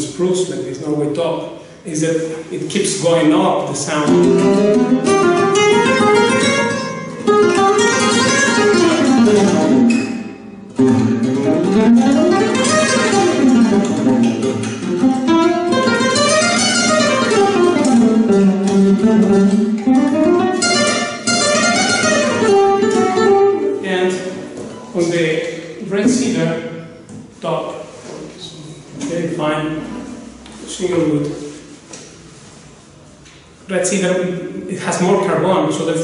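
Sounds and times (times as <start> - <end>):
flamenco guitar scale runs: 4.1 - 23.7.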